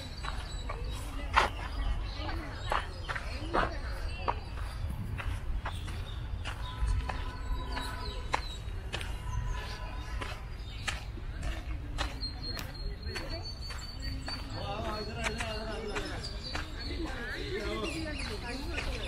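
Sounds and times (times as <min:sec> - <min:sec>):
faint distant voices: 0:00.0 - 0:19.0
footsteps on dirt path: 0:00.0 - 0:19.0
wind rumble on microphone: 0:01.1 - 0:12.0.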